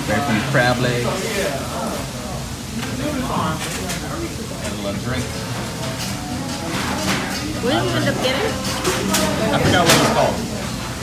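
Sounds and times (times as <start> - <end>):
voices talking in background: 0.0 - 11.0.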